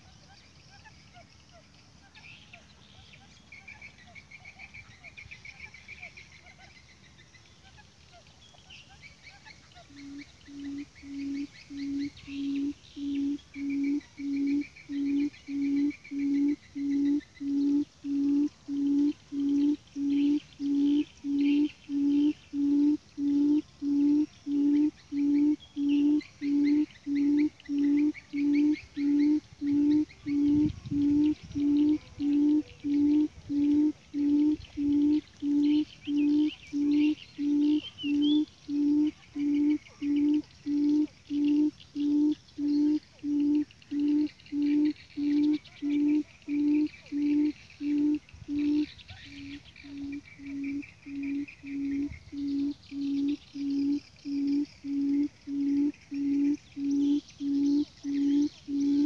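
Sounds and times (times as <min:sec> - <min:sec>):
high chirping: 0:09.8 - 0:59.0
quail low hoots: 0:09.8 - 0:59.0.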